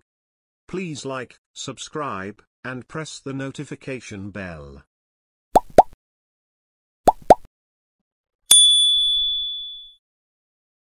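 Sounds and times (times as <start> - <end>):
bright bell ding: 8.5 - 10.0.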